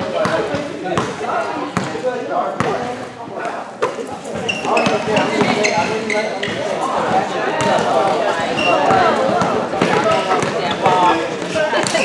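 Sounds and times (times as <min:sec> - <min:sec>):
basketball bouncing on gym floor: 0:08.8 - 0:10.9.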